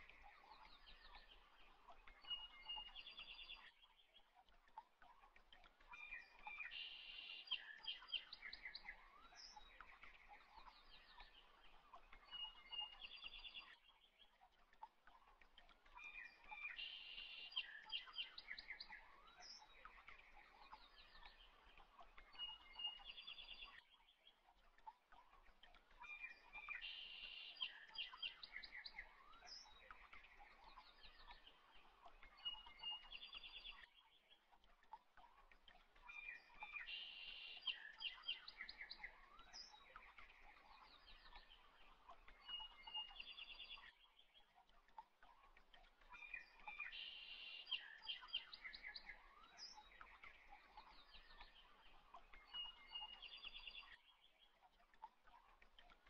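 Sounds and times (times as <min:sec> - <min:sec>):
birds chirping and trilling: 0:35.4 - 0:55.7.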